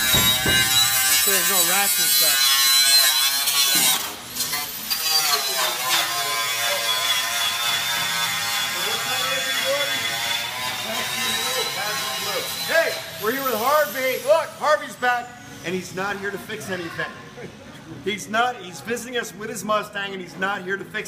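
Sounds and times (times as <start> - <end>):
power tool whining: 0.0 - 14.7.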